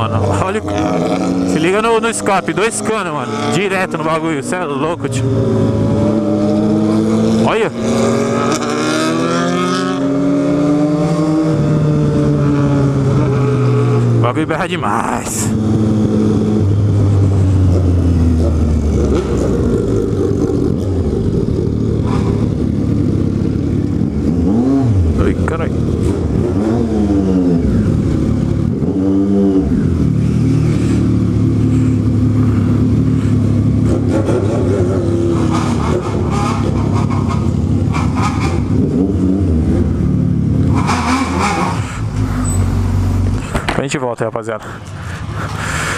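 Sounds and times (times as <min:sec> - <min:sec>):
motorcycle engine revving: 0:00.0 - 0:14.5, 0:15.4 - 0:43.8.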